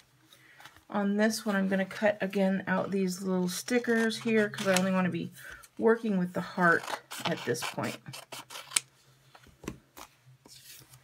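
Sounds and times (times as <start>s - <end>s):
scissors snipping sticker sheet: 3.9s - 4.9s.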